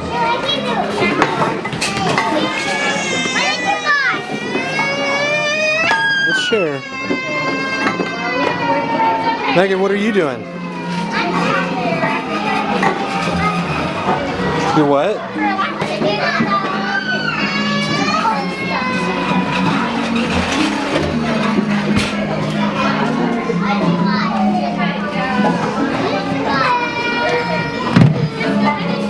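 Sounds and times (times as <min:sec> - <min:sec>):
children talking and calling out: 0:00.0 - 0:29.0.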